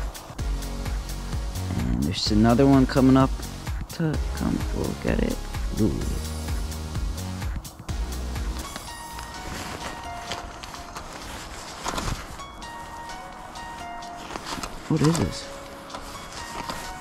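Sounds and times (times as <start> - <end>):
background music with held tones: 0.0 - 17.0.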